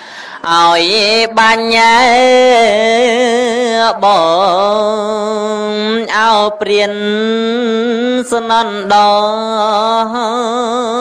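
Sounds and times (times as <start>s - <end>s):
man chanting: 0.4s - 11.0s.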